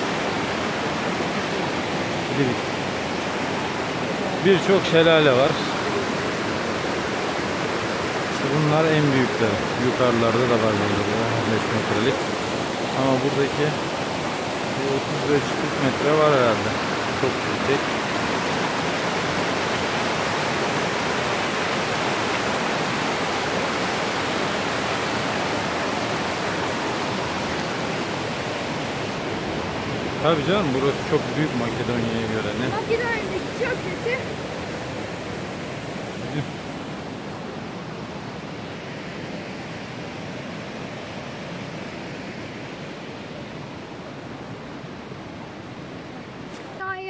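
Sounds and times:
waterfall rushing: 0.0 - 47.0.

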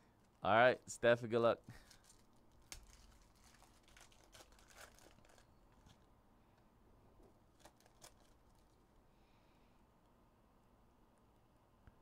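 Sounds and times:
foil wrapper crinkling and tearing: 1.7 - 6.1, 7.4 - 8.8.

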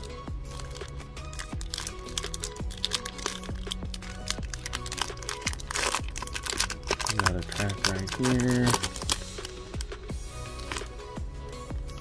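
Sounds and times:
foil wrapper crinkling: 0.0 - 11.0
background music with steady beat: 0.0 - 12.0.

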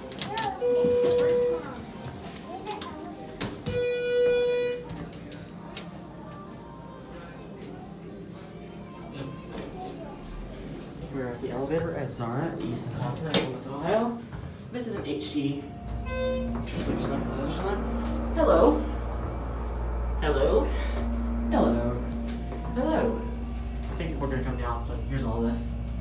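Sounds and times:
low hum in elevator cab: 0.2 - 26.0
elevator beep: 0.6 - 1.8, 15.7 - 23.9
short buzzy elevator beep: 15.9 - 20.0.

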